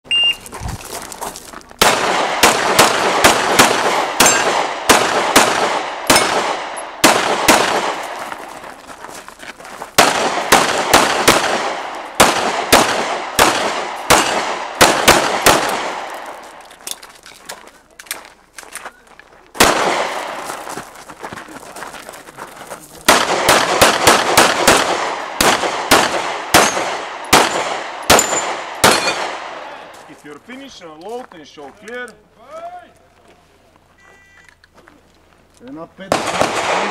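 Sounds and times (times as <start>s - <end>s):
shot timer beep: 0.1s - 0.4s
pistol shots with ringing echo: 1.8s - 8.2s, 10.0s - 16.4s, 19.6s - 20.4s, 23.1s - 29.9s, 36.0s - 36.9s.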